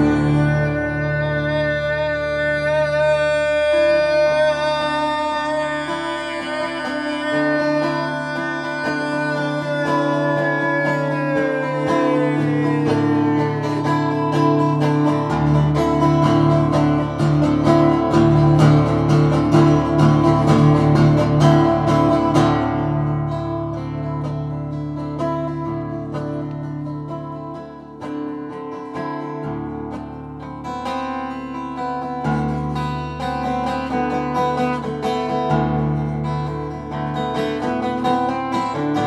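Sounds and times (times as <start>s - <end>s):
strummed acoustic guitar chords: 0.0s - 39.0s.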